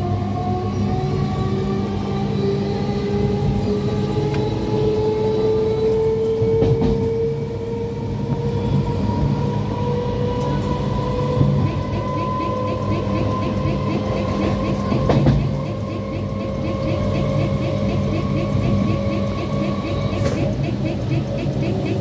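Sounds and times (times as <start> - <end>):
train rumble inside carriage: 0.0 - 22.0.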